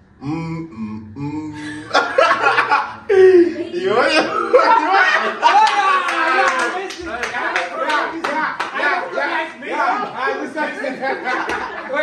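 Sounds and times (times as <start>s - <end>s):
young people laughing and exclaiming: 1.6s - 12.0s
hands clapping: 5.5s - 9.6s, 11.4s - 11.7s.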